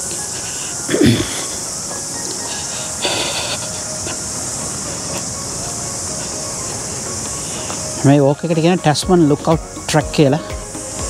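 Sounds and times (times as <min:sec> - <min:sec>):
cicadas shrilling: 0:00.0 - 0:11.0.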